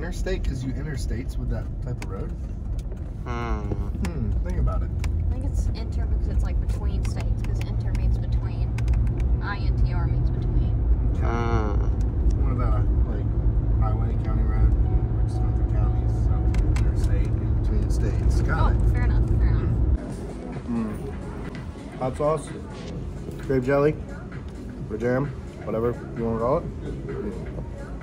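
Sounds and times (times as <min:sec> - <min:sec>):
truck road and engine drone: 0:00.0 - 0:28.0
voices: 0:03.2 - 0:08.8, 0:09.4 - 0:28.0.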